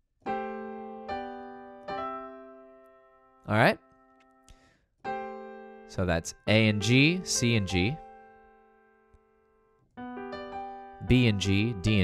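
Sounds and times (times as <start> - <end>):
piano chord ringing: 0.3 - 12.0.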